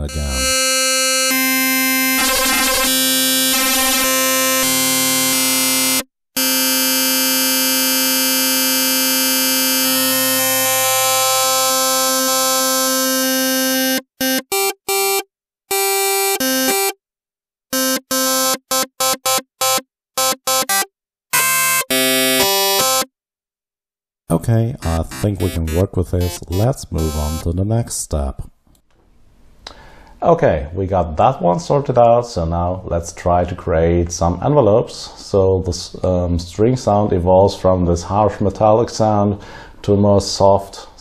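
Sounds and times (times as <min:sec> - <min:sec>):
harsh metallic synthesizer note: 0:00.0 - 0:14.0, 0:24.8 - 0:27.5
short choppy synthesizer notes: 0:00.0 - 0:17.0, 0:17.7 - 0:23.0, 0:24.4 - 0:27.5.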